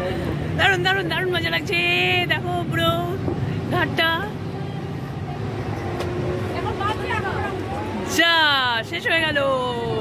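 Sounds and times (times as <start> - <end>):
ferry engine rumble: 0.0 - 10.0.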